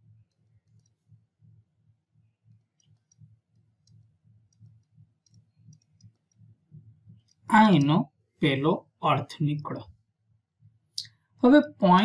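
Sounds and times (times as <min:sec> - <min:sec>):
stylus tapping on tablet: 0:02.2 - 0:08.0.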